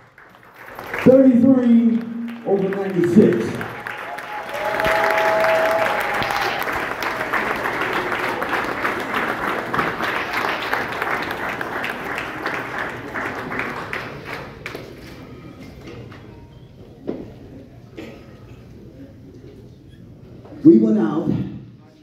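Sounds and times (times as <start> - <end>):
crowd applauding: 0.0 - 15.1.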